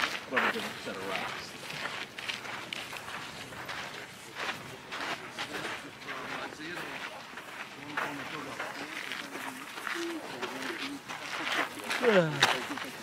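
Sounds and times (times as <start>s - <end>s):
footsteps on dirt path: 0.0s - 13.0s
distant people talking: 3.3s - 13.0s.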